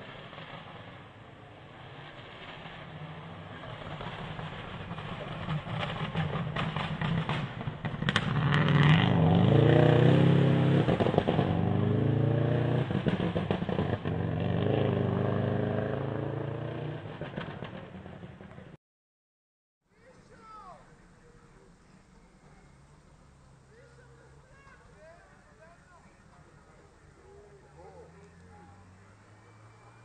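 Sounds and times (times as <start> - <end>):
rally car engine revving past: 1.7 - 18.5
sharp cracks: 3.8 - 8.7.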